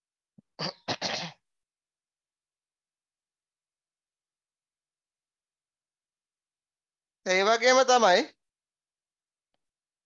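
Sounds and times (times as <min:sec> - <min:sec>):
person clearing throat: 0:00.5 - 0:01.4.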